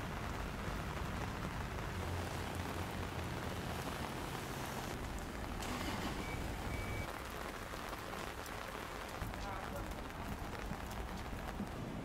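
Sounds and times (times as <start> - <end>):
raindrops hitting nearby: 0.0 - 12.0
steady rain falling: 0.0 - 12.0.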